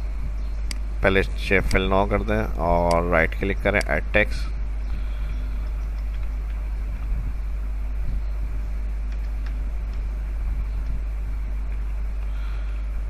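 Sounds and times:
low background hum: 0.0s - 13.0s
faint clicks: 5.6s - 7.2s, 9.0s - 10.1s.

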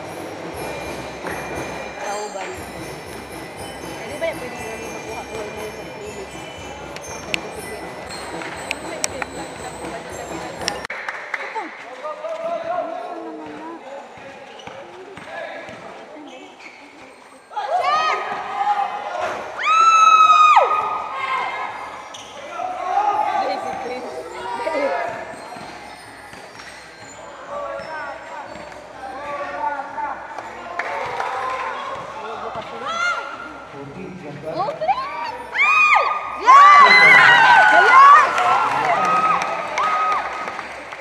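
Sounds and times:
basketball bouncing on court: 14.2s - 16.0s, 25.1s - 27.2s
people shouting: 35.6s - 40.3s.

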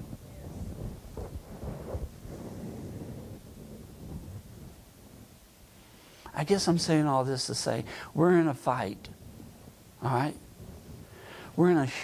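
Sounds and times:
microphone rubbing against shirt: 0.4s - 4.5s.

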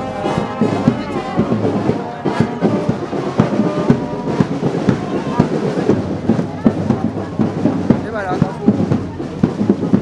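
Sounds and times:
crowd chatter: 0.0s - 10.0s
drums marching rhythm: 0.0s - 10.0s.

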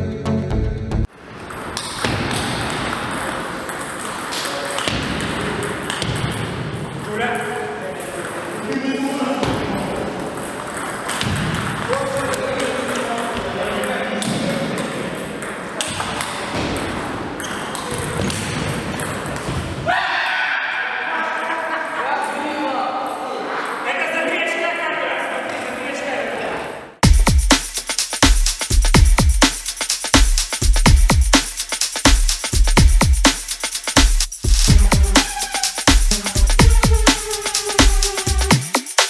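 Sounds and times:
people talking: 7.0s - 10.1s, 11.8s - 15.1s, 21.0s - 26.8s, 34.7s - 38.5s.

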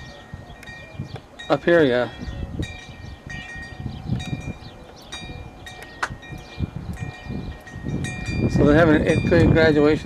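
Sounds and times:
wind chimes ringing: 0.0s - 10.0s.

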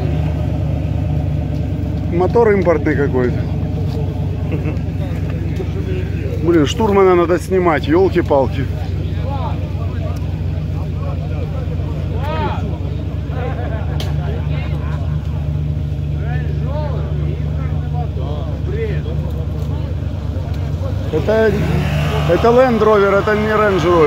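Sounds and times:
engine running with steady hum: 0.0s - 24.0s.

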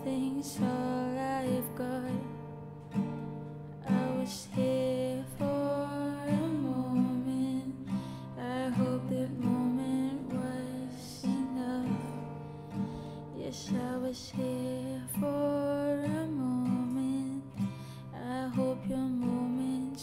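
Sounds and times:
acoustic guitar chords ringing: 0.0s - 20.0s.

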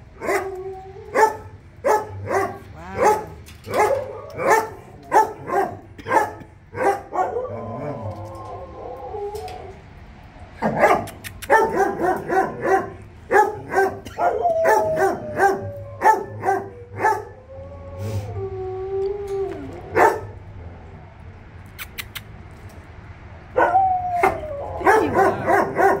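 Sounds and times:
dog barking: 1.2s - 7.5s, 10.6s - 17.3s, 20.0s - 20.4s, 23.6s - 26.0s
dog howling: 7.1s - 9.8s, 11.7s - 20.4s, 23.6s - 26.0s.

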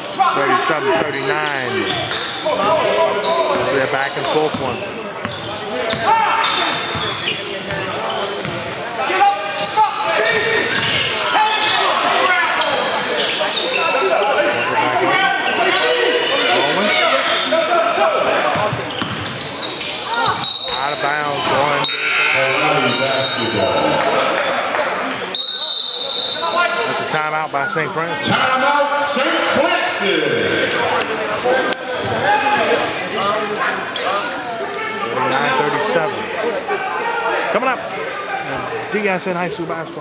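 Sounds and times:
crowd and players' voices echoing: 0.0s - 40.0s.

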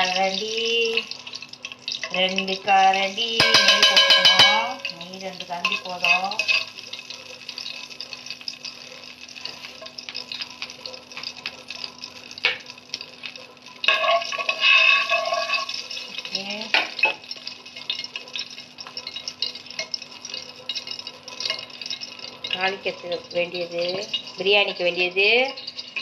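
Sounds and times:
oil crackling and sizzling: 0.0s - 26.0s
utensil scraping a pot: 5.6s - 11.3s, 13.0s - 16.4s, 17.0s - 26.0s.

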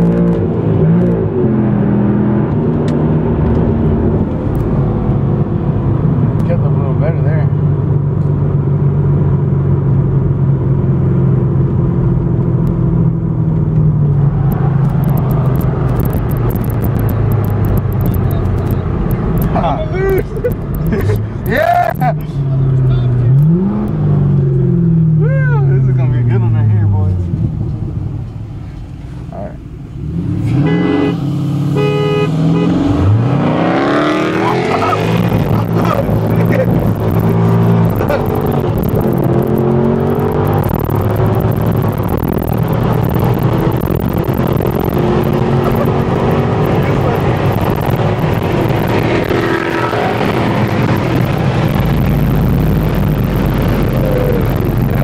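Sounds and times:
car engine revving under load: 0.0s - 55.0s.

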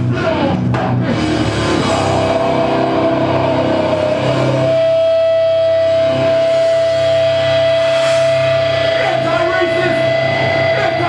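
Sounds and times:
electric guitar feedback tone: 0.0s - 11.0s
hardcore punk band playing: 0.0s - 11.0s.

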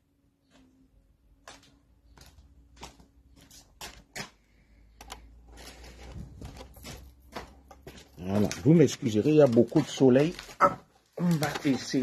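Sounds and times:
footsteps: 0.4s - 4.6s, 5.4s - 12.0s
man speaking: 8.2s - 12.0s.

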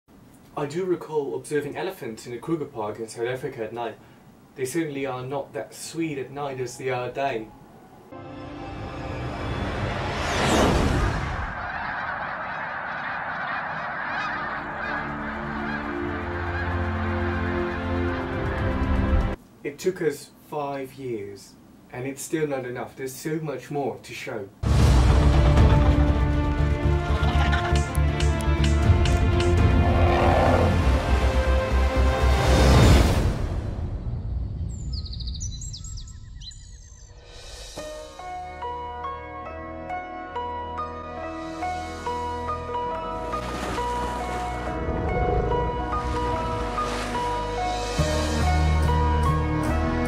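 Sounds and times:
birds chirping: 3.9s - 8.2s, 11.5s - 19.0s, 34.1s - 37.3s
loud rushing burst: 9.2s - 12.3s
flock of geese honking: 11.4s - 19.3s.

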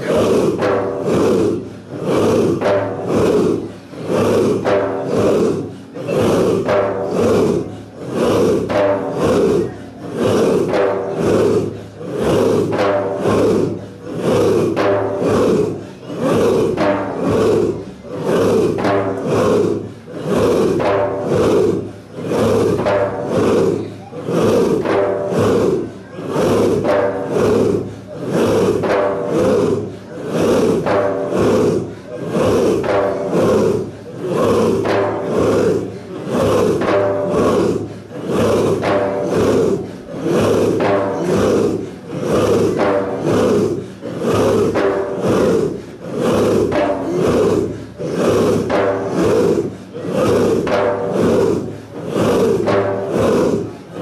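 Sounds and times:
group of voices chanting: 0.0s - 54.0s.

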